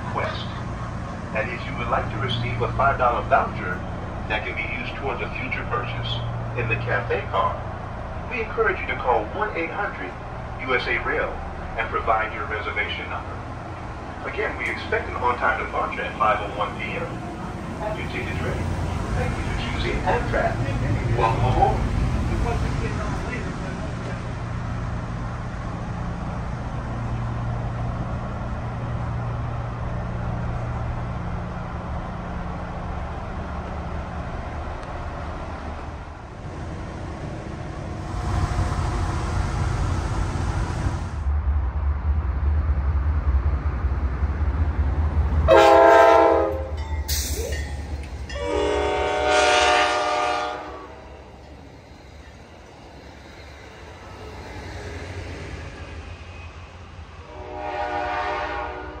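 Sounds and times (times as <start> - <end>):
diesel locomotive rumble: 0.0 - 59.0
train air horn blasts: 45.5 - 46.7, 48.3 - 51.2, 57.3 - 59.0.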